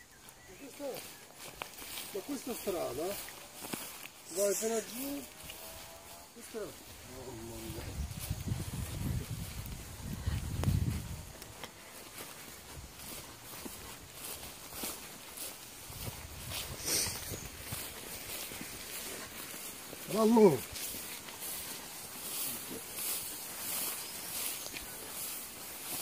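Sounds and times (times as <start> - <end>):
footsteps in long grass: 0.0 - 26.0
low rumble on microphone: 7.2 - 11.3.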